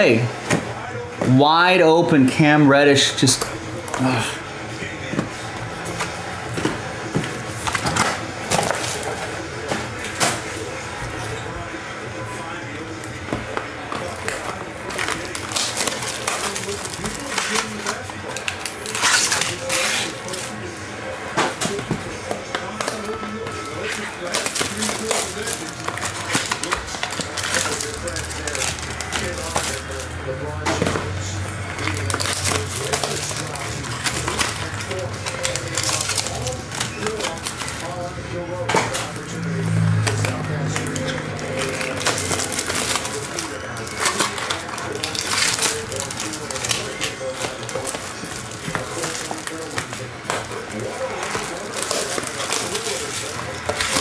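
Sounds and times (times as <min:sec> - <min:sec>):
card packs crinkling and clicking: 0:00.0 - 0:54.0.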